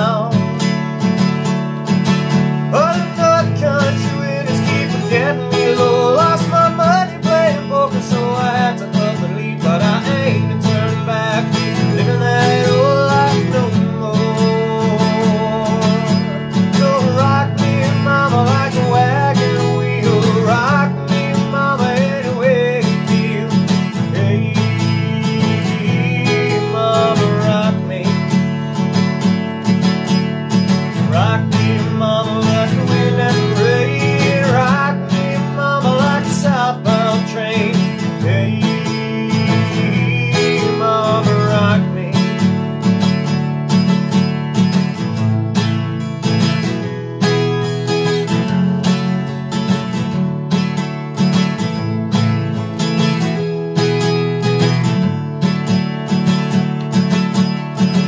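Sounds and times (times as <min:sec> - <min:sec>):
man singing: 0:00.0 - 0:01.0, 0:02.3 - 0:45.1
acoustic guitar strumming: 0:00.0 - 0:58.0.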